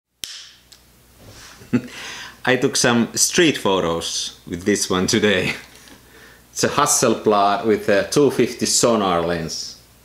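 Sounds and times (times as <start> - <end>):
sharp click with room echo: 0.2 - 0.9.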